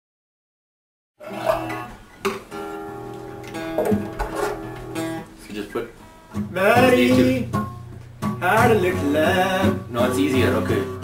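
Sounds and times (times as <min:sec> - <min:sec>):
acoustic guitar strummed: 0:01.2 - 0:11.0.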